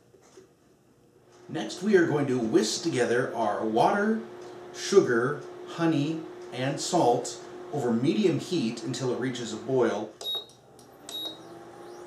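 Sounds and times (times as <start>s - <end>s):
cooktop low hum: 0.0s - 12.0s
control panel beeping: 10.2s - 11.6s.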